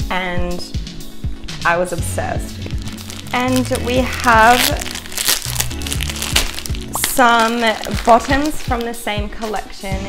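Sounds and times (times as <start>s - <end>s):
background music with steady beat: 0.0s - 10.0s
plastic bag crinkling: 2.6s - 9.0s.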